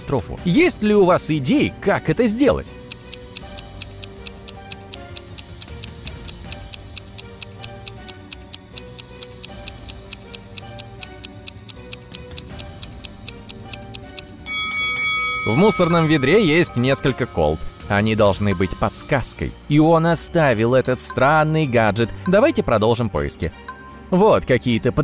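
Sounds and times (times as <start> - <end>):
soft background music: 0.0 - 25.0
timer ticking: 0.5 - 19.2, 20.9 - 22.8
bright chime: 14.4 - 18.9.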